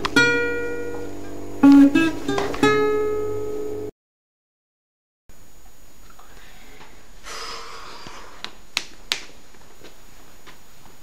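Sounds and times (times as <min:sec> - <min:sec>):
recording hiss: 0:05.3 - 0:11.0
short noisy breath: 0:06.2 - 0:08.4.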